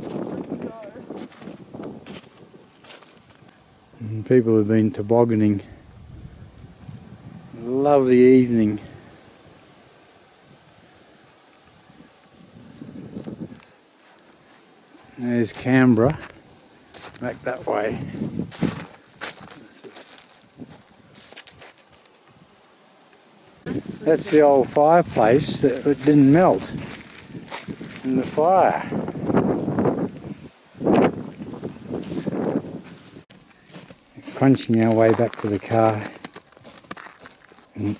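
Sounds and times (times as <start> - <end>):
rustling crunching in snow: 0.0 - 3.5, 12.4 - 22.4, 23.6 - 28.8, 29.5 - 37.9
faint wind: 0.0 - 37.9.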